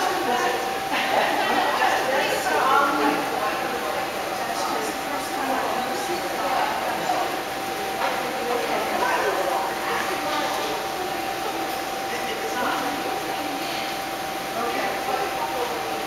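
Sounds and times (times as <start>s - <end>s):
people talking indistinctly: 0.0s - 16.0s.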